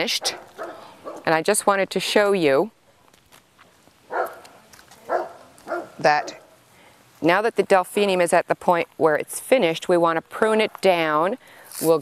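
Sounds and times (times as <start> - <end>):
dog barking: 0.2 - 1.3, 4.1 - 4.5, 5.1 - 6.5.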